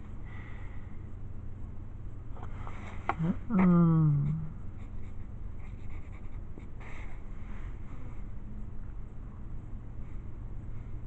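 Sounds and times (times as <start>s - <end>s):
person humming: 3.1s - 4.6s
pencil scratching on paper: 4.7s - 7.1s.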